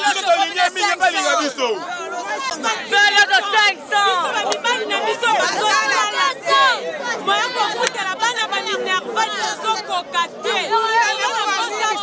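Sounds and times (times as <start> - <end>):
woman speaking loudly: 0.0 - 12.0.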